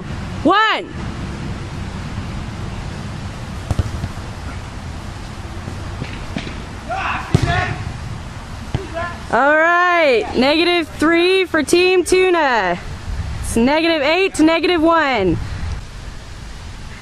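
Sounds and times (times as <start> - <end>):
steady low rumble: 0.0 - 17.0
ball knocks: 3.7 - 4.2, 7.3 - 7.8
players shouting: 6.8 - 8.0.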